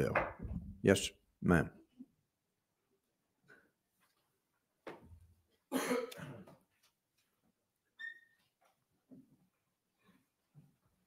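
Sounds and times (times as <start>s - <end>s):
person coughing: 5.7s - 6.5s
short high squeak: 8.0s - 8.4s.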